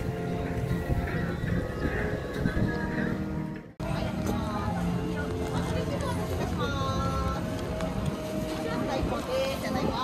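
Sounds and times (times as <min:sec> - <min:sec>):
wind on microphone: 0:00.0 - 0:03.7, 0:06.4 - 0:10.0
held musical tone: 0:00.0 - 0:10.0.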